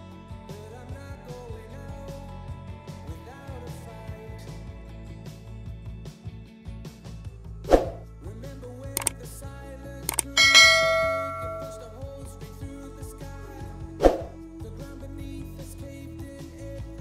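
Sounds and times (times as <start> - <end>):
background music: 0.0 - 17.0
bell chime: 10.1 - 12.0.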